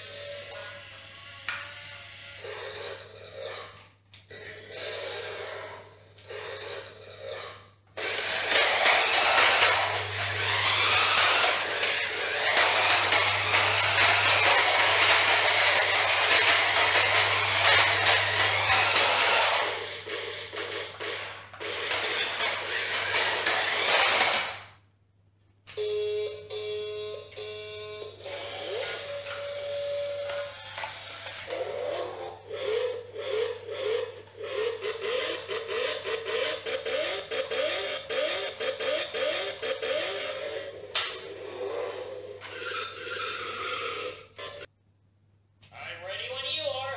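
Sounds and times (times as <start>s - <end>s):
toy car whirring: 0.0s - 24.7s, 28.3s - 44.7s.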